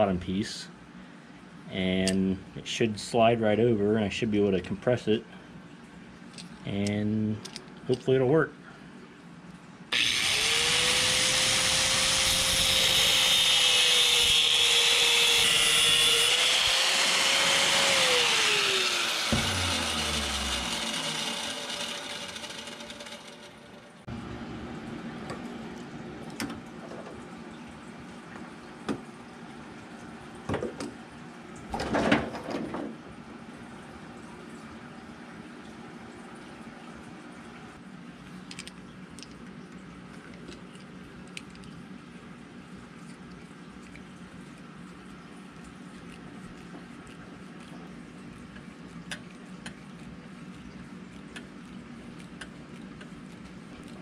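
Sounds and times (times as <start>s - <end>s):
angle grinder whining: 9.9s - 24.0s.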